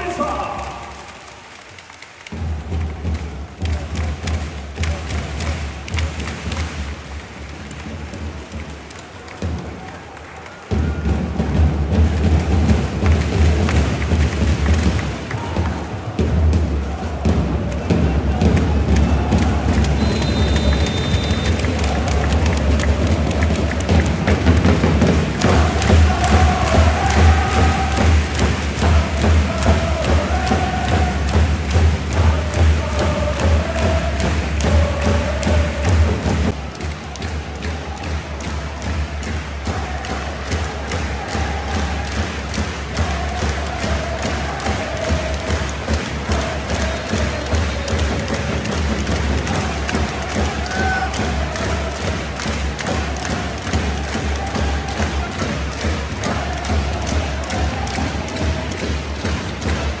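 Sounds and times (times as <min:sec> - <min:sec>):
bass drum beat: 0:10.8 - 1:00.0
crowd singing in unison: 0:16.6 - 0:36.6, 0:38.5 - 1:00.0.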